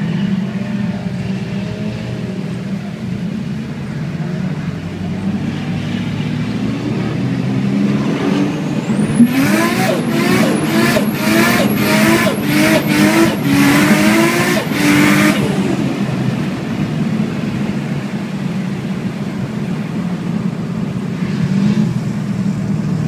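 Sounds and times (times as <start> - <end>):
car engine revving: 0.0 - 23.0.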